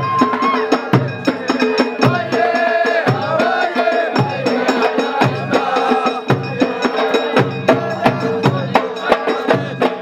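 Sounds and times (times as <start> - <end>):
deep drum beats: 0.0 - 10.0
fast sharp percussion strikes: 0.0 - 10.0
men singing a folk chant: 0.0 - 10.0.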